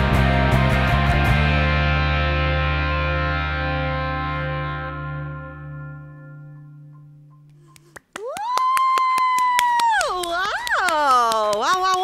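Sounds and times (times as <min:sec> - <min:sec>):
quick hand claps: 0:07.5 - 0:12.0
woman cheering high-pitched: 0:08.1 - 0:12.0.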